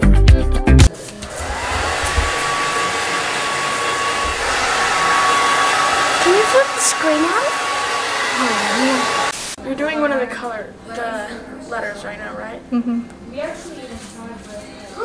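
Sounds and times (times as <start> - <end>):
hair dryer running: 1.1 - 9.6.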